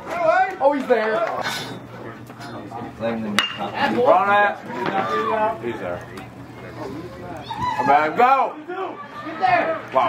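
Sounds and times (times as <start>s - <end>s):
metal bat hitting ball: 3.4s - 3.7s.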